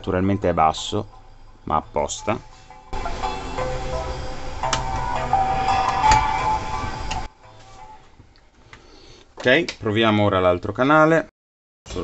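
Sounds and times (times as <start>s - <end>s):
music from a speaker: 3.0s - 8.0s.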